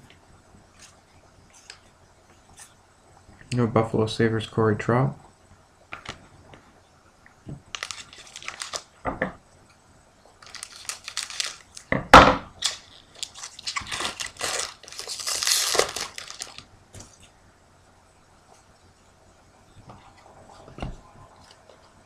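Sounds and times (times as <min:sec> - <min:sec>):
foil wrappers crinkling and tearing: 0:07.7 - 0:09.0, 0:10.4 - 0:11.9, 0:12.6 - 0:17.3.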